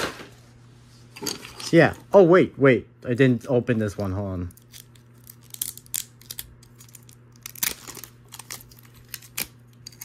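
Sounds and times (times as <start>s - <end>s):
wrapping being torn and crinkled: 4.4s - 10.0s.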